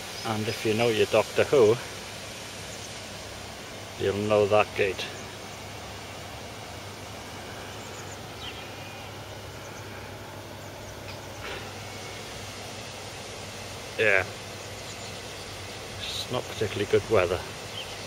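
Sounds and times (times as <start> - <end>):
outdoor background noise: 0.0 - 18.0.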